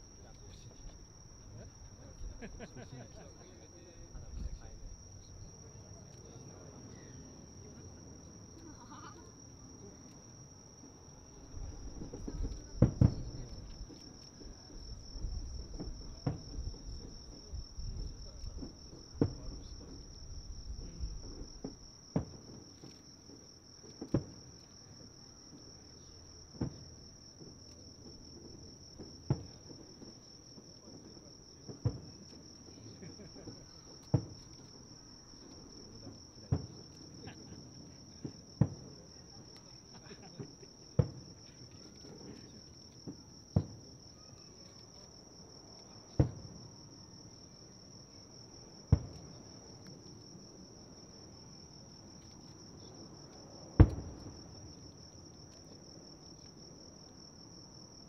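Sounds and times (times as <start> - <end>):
high-pitched insect trill: 0.0 - 28.0, 31.3 - 58.0
distant fireworks booming: 10.8 - 34.6, 35.2 - 44.6, 45.8 - 46.8, 48.6 - 51.4, 52.1 - 55.1.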